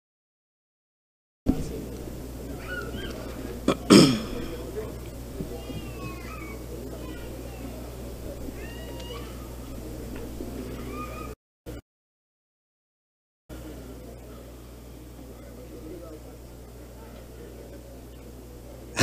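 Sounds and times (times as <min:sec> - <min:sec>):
steady low hum: 0:01.5 - 0:11.8, 0:13.5 - 0:19.0
person coughing: 0:03.6 - 0:04.6.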